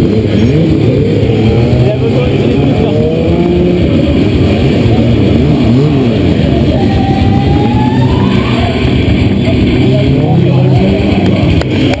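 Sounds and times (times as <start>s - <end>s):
motorcycle engine revving: 0.0s - 12.0s.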